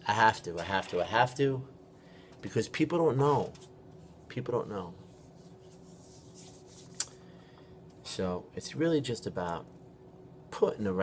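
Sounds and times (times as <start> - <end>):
faint steady hum: 0.0 - 11.0
hands rubbing: 5.1 - 7.2.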